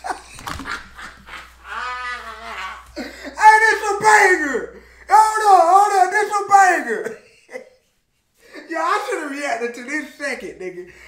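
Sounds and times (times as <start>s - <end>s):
man's high laughing cry: 0.0s - 4.4s.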